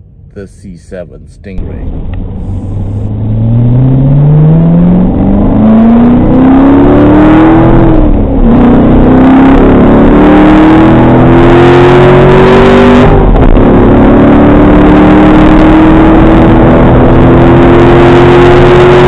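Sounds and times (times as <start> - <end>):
car engine accelerating hard: 1.6 - 19.0.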